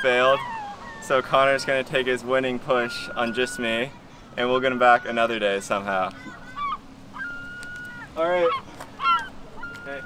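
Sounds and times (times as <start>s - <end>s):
gulls calling: 0.0s - 10.0s.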